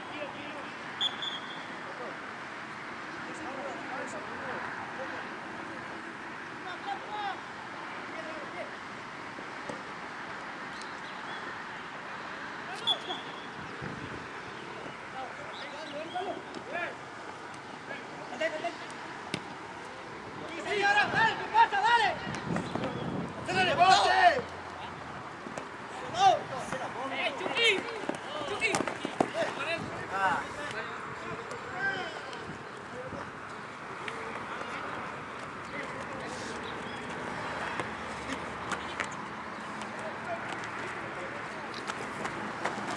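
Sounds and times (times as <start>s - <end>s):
outdoor background hiss: 0.0s - 42.9s
football players shouting: 20.5s - 25.0s, 25.8s - 32.5s.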